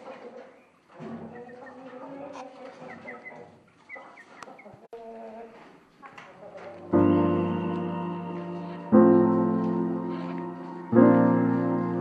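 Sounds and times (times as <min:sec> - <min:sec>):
chicks peeping: 0:00.0 - 0:12.0.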